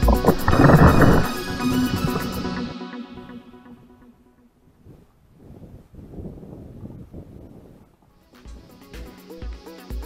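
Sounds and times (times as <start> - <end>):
wind buffeting microphone: 0.0 - 2.7, 4.6 - 8.1.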